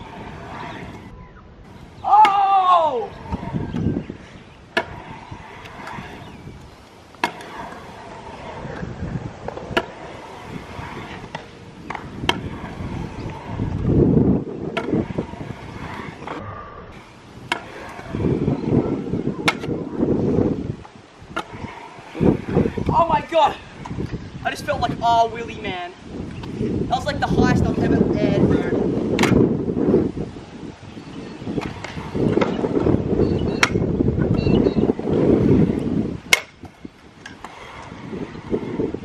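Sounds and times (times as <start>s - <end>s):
scooter wheels rolling on concrete: 0.0s - 39.0s.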